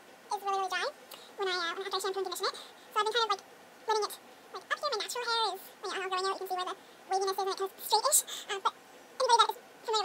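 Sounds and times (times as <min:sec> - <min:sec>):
woman talking in high pitch: 0:00.3 - 0:10.0.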